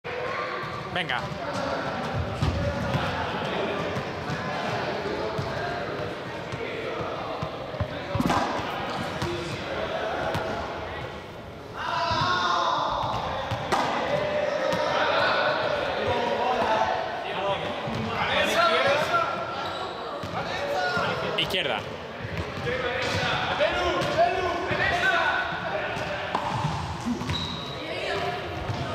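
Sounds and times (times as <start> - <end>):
background chatter of voices: 0.0 - 28.9.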